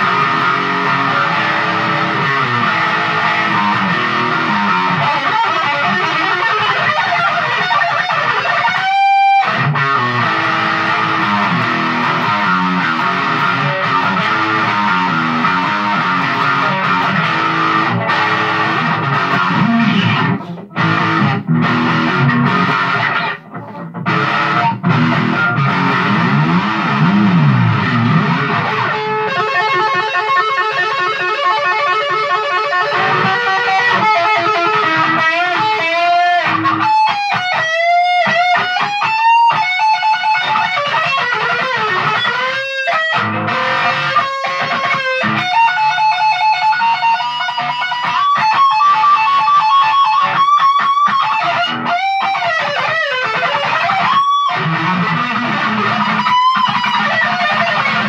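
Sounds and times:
electric guitar playing: 0.0s - 58.0s.

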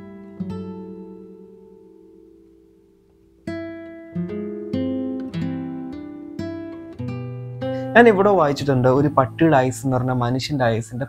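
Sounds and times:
acoustic guitar picking: 0.0s - 10.8s.

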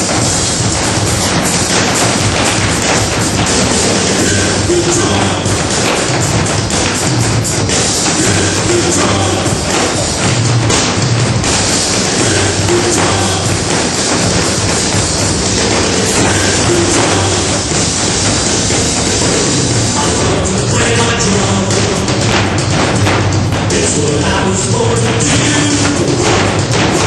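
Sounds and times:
group drumming on floor drums: 0.0s - 27.0s
loud music: 0.0s - 27.0s.

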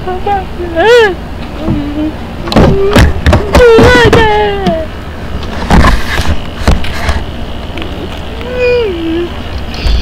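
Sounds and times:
person humming wordlessly: 8.4s - 10.0s.

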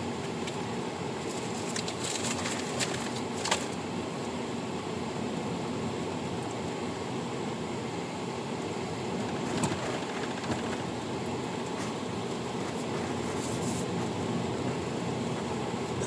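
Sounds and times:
car road and engine noise: 0.0s - 16.0s.

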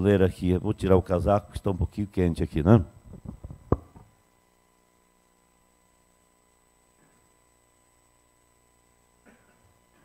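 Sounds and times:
microphone handling noise: 3.0s - 4.1s.

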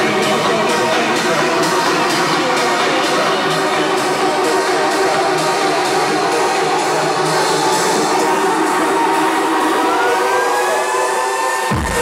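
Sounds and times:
house music mix: 0.0s - 12.0s.

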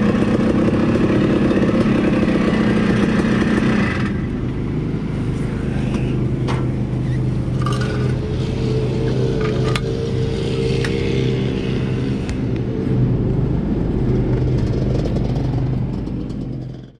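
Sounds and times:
motorcycle engine idling: 0.0s - 17.0s.

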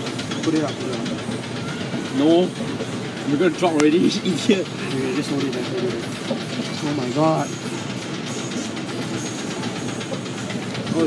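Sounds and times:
amusement ride rattling rumble: 0.0s - 11.0s.

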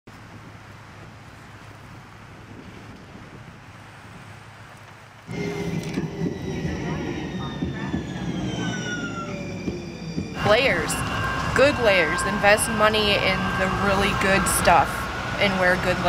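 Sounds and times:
train motors whining: 5.3s - 16.0s
train rumbling past: 5.3s - 16.0s.

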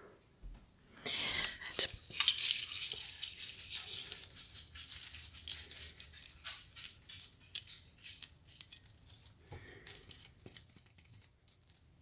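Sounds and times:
artificial pine branches rustling: 1.6s - 11.9s.

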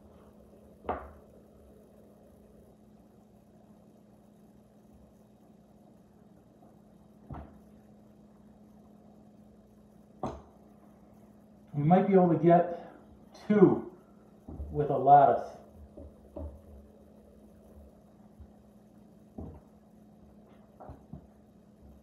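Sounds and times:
faint steady hum: 0.0s - 22.0s
rolling pin knocking on cutting board: 15.9s - 16.7s.

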